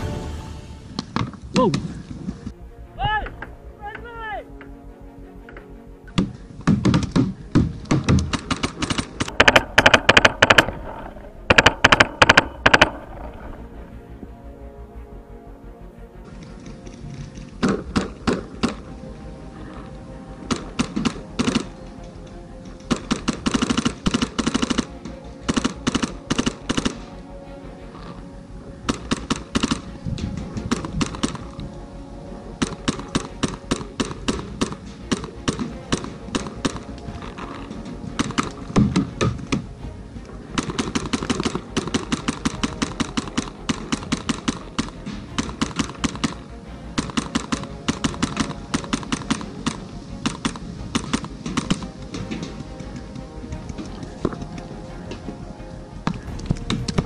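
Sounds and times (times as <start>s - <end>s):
background music: 0.0s - 57.0s
paintball markers firing: 6.7s - 13.4s.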